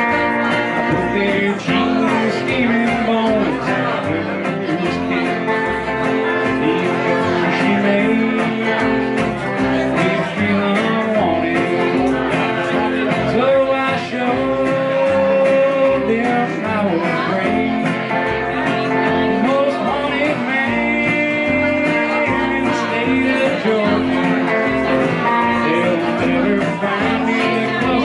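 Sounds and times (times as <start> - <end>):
electric guitar: 0.0 - 28.0
plucked double bass: 0.0 - 28.0
strummed acoustic guitar: 0.0 - 28.0.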